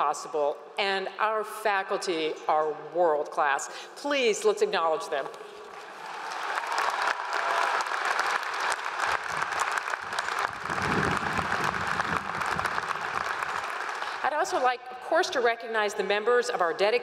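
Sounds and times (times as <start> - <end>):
large crowd applauding: 5.7 - 14.2.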